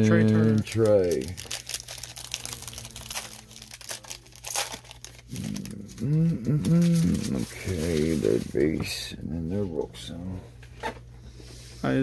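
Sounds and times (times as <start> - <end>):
foil wrapper crinkling: 0.0 - 8.8
low voice murmuring: 5.3 - 8.4.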